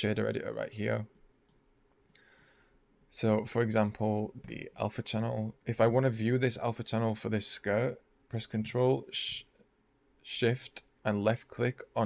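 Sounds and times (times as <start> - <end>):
computer mouse clicks: 1.1 - 2.5.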